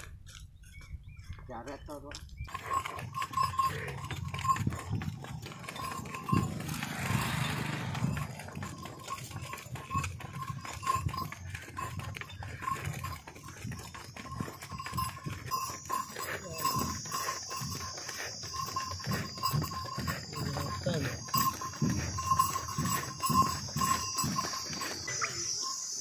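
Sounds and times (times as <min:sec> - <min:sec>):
hoof steps and scuffs: 0:00.0 - 0:26.0.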